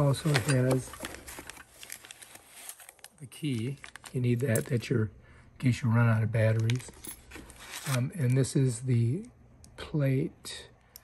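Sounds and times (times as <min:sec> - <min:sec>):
plastic bag crinkling: 0:00.0 - 0:04.9.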